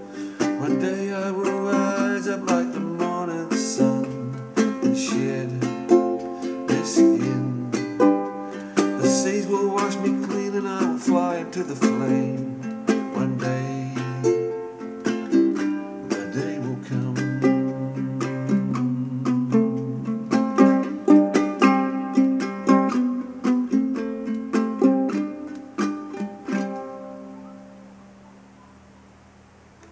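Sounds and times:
acoustic stringed instrument playing: 0.0 - 27.5.

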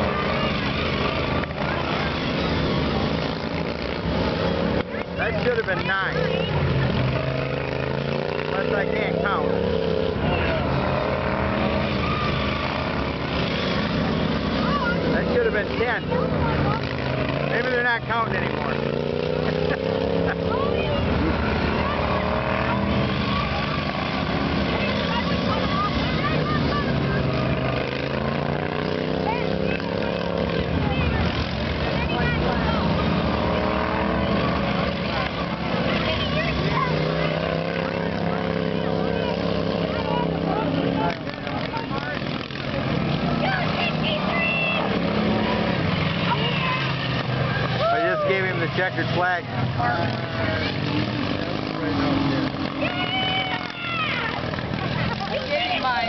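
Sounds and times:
faint spectators' voices: 0.0 - 56.0
lawn mower engines droning: 0.0 - 56.0.

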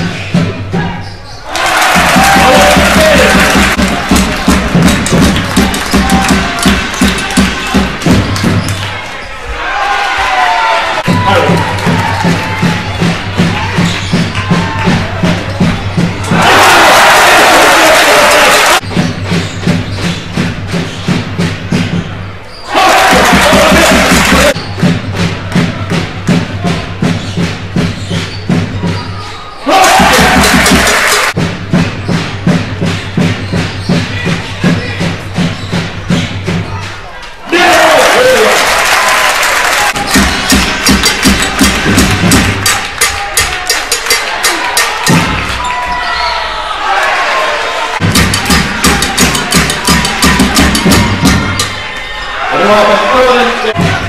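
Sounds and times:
crowd cheering: 0.7 - 20.5, 21.4 - 54.0
backing music with beat and bass: 48.0 - 51.9.

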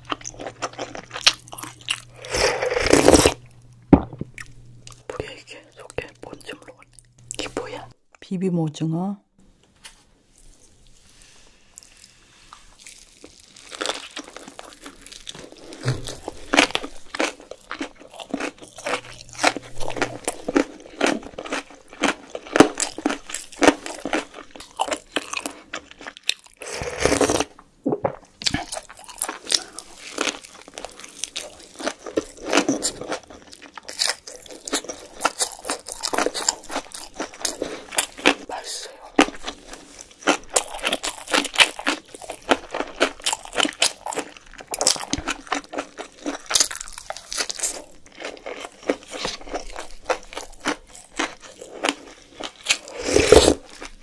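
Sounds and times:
close chewing and crunching: 0.0 - 3.5, 11.8 - 27.6, 28.4 - 54.0
slurping sauce from spoon: 2.2 - 3.4, 52.8 - 53.7.

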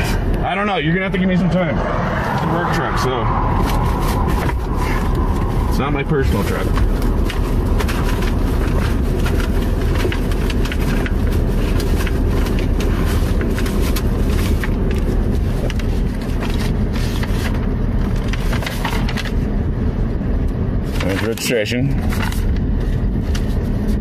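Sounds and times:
papers rustling and scraping: 3.5 - 19.5, 20.8 - 24.0.

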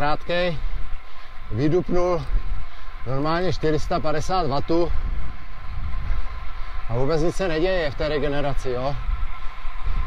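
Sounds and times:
wind buffeting a microphone: 0.0 - 10.0.

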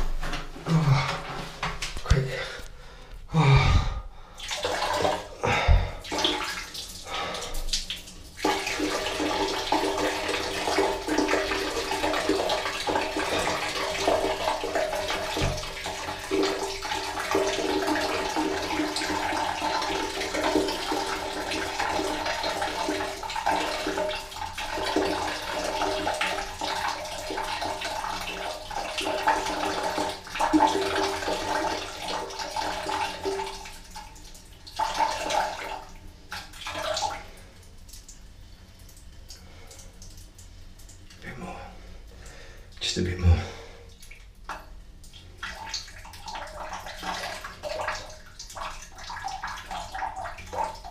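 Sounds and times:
water running: 0.0 - 50.9.

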